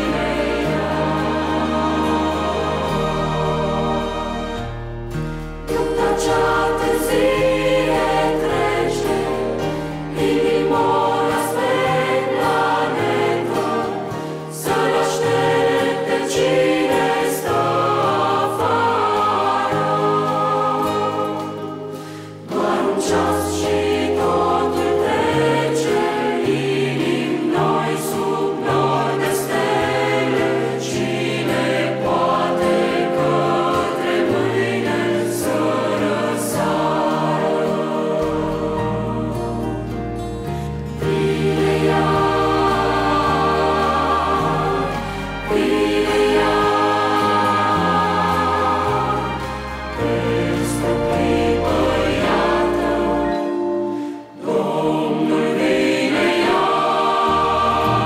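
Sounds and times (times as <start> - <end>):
choir singing sacred song: 0.0 - 58.0
digital piano: 0.0 - 58.0
strings: 0.0 - 58.0.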